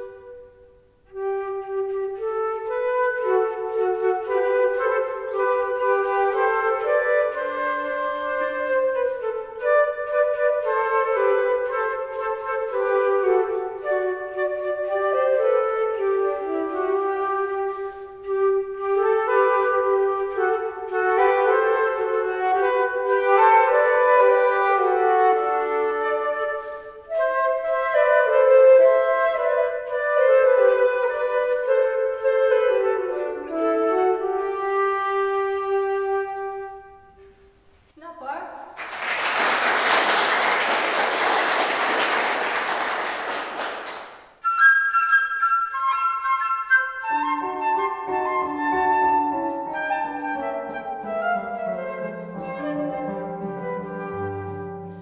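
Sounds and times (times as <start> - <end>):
flute duet: 0.0 - 55.0
audience applause: 38.8 - 44.2.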